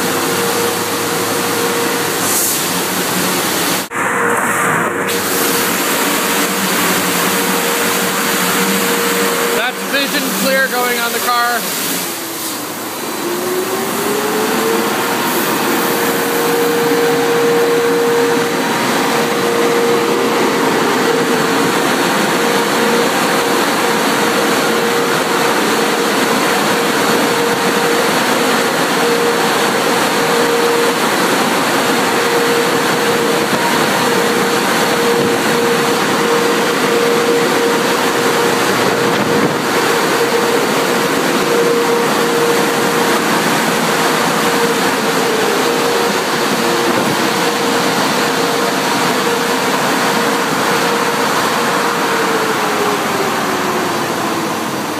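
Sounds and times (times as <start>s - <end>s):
car wash machinery rushing: 0.0s - 54.9s
motor hum: 5.1s - 54.9s.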